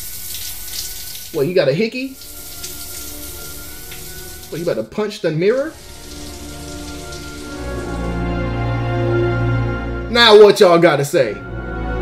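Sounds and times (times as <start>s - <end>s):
rain-like hiss: 0.0s - 4.8s, 5.5s - 8.2s
film music: 0.6s - 12.0s.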